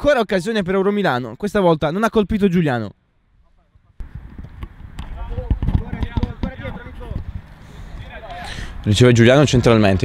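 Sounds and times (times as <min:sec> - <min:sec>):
football kicks: 0:04.1 - 0:07.3.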